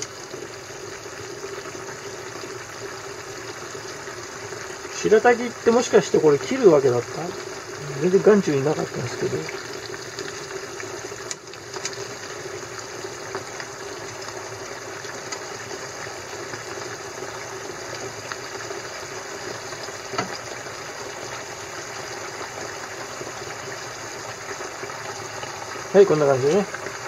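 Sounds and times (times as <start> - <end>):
stew simmering: 0.0 - 27.0.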